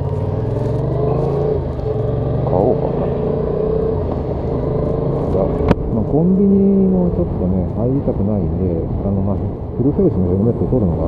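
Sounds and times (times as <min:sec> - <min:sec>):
motorcycle engine accelerating: 0:00.0 - 0:09.6.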